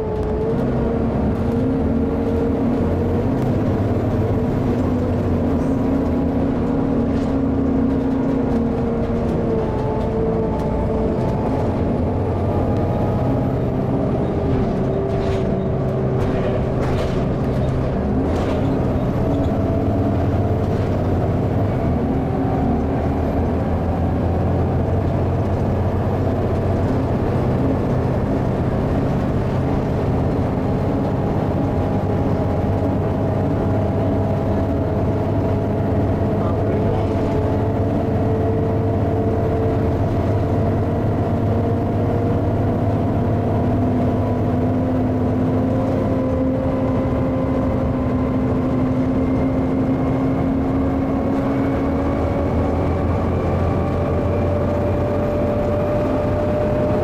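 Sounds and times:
bus diesel engine droning: 0.0 - 57.0.

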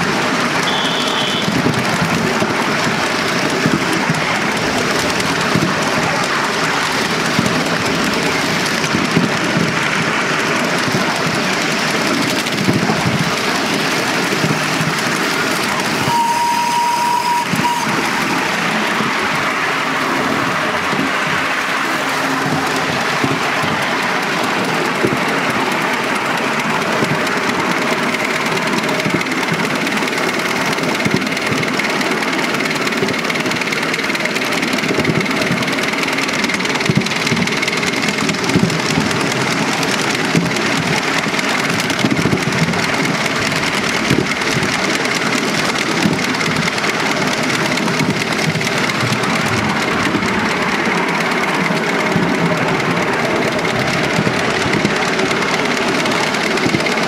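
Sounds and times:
steam locomotive mechanical clatter: 0.0 - 57.0
wheels clicking on rails: 0.0 - 57.0.

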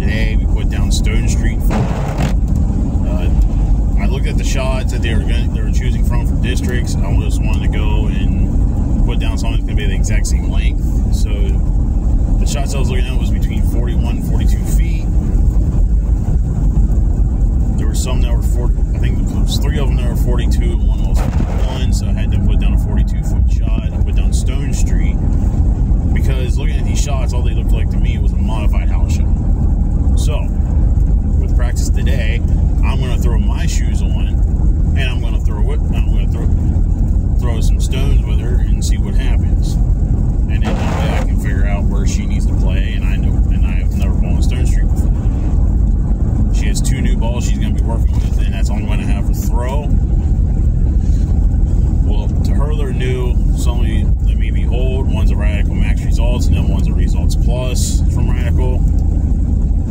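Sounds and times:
man talking: 0.0 - 2.0, 3.0 - 11.7, 12.4 - 15.2, 17.7 - 25.2, 26.1 - 29.4, 30.2 - 30.6, 31.4 - 36.6, 37.3 - 39.8, 40.5 - 45.1, 46.4 - 50.0, 52.0 - 58.9
road and engine rumble: 0.0 - 59.9.

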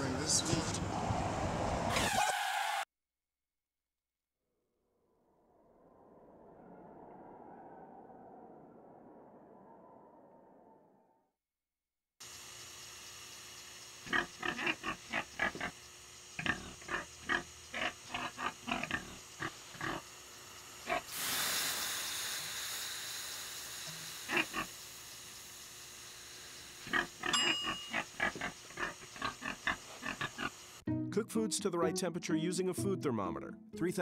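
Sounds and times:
pig grunting: 14.0 - 15.8, 16.4 - 20.0, 24.3 - 24.7, 26.8 - 30.6
steam hissing off hot stones: 17.7 - 27.0.

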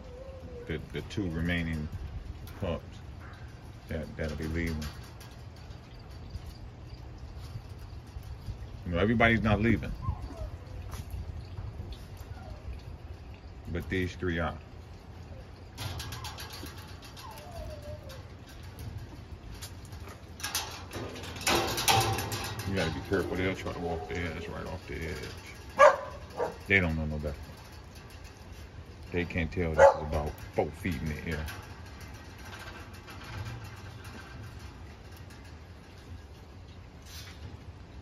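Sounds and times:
puppies scuffling: 0.0 - 38.0.

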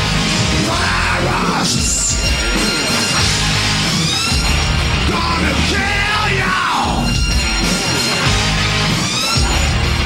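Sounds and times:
distorted electric guitars: 0.0 - 10.0
drums: 0.0 - 10.0
person yelling vocals: 5.1 - 7.1.

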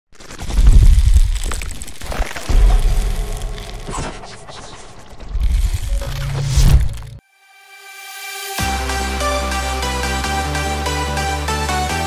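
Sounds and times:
crackling shattering noise: 0.2 - 7.2.

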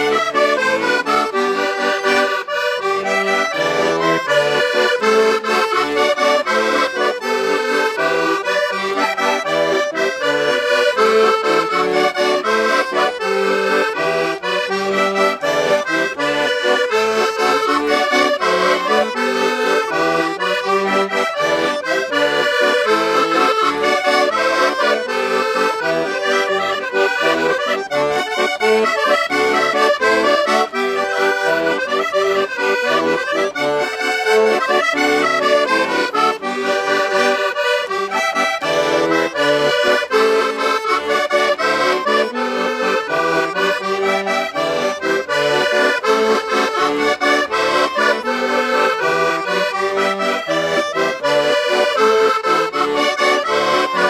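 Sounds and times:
button accordions playing folk tune: 0.0 - 54.0.

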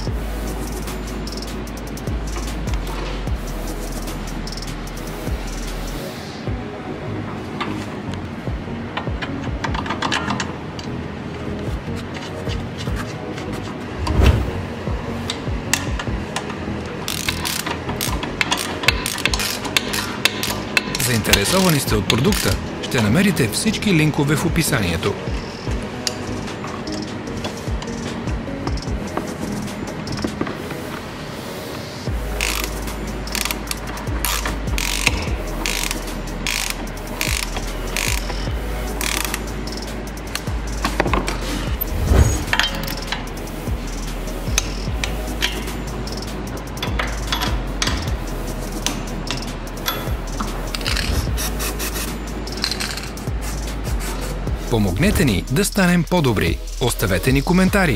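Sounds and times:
rapid ratchet clicking: 0.0 - 6.0, 17.1 - 22.6, 32.2 - 41.7, 42.6 - 54.5
background music: 0.0 - 57.9
steady low hum: 36.2 - 45.4.

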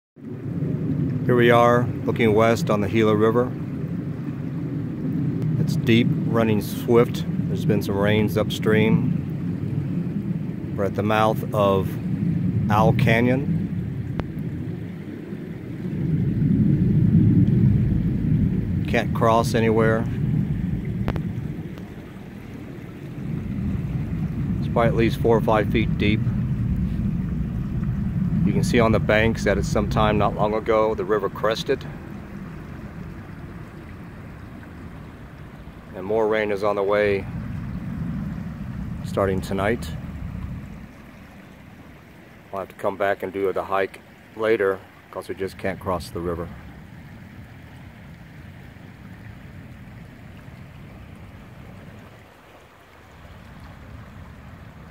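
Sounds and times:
wind rumbling on microphone: 0.2 - 54.9
river rushing: 0.4 - 54.9.

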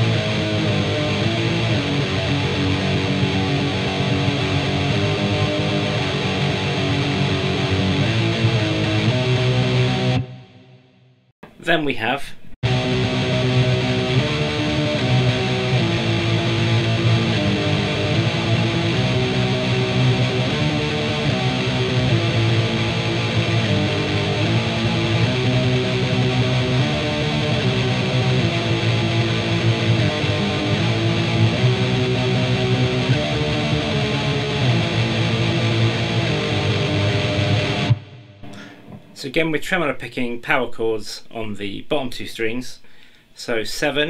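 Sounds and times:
distorted electric guitar riff: 0.0 - 11.6, 12.6 - 39.5.

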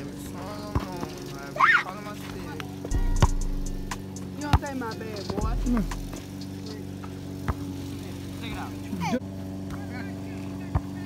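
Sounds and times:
motor-like hum: 0.0 - 11.0
ball kicked thud: 2.9 - 3.6.

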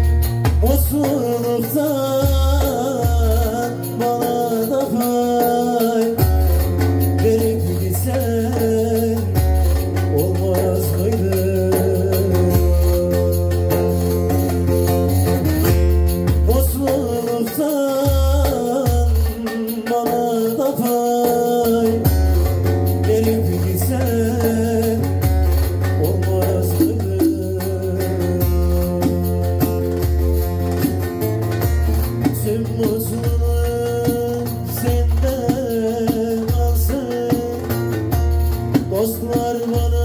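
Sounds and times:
jingling hand drum: 0.0 - 40.0
plucked lute melody: 0.0 - 40.0.

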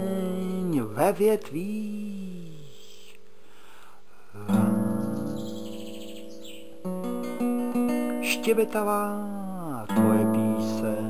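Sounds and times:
person singing: 0.0 - 3.3, 8.1 - 11.0
acoustic guitar strumming: 0.0 - 3.5, 4.4 - 11.0.

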